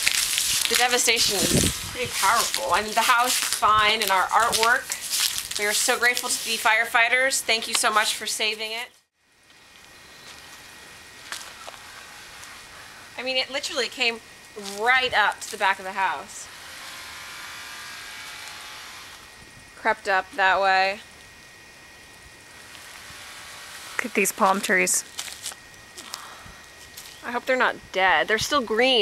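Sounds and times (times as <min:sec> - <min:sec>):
outdoor background hiss: 0:00.0 - 0:29.0.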